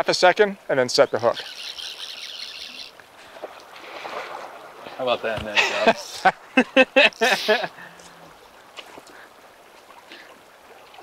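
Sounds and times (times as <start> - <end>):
fly reel drag clicking: 1.4 - 3.0.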